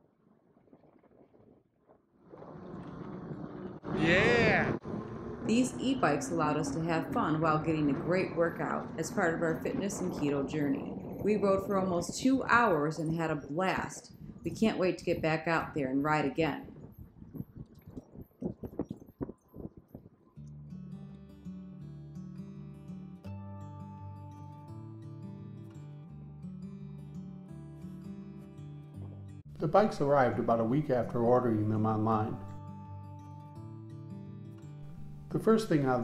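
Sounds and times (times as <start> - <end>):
wind noise on microphone: 2.2 - 20.3.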